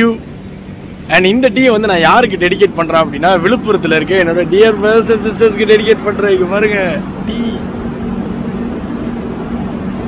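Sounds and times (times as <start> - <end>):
idling train engine hum: 0.0 - 10.0.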